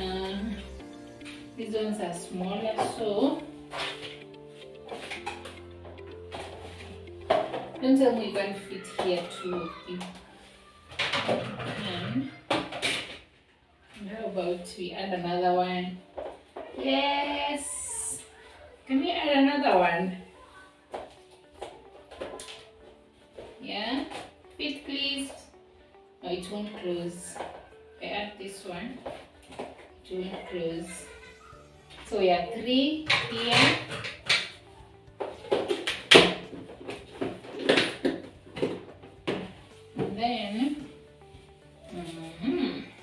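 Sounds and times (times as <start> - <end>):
faint background music: 0.0 - 43.0.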